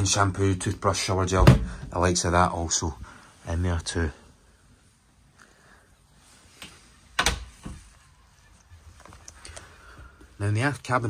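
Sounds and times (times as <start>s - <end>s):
door latch clicks: 7.2s - 7.5s.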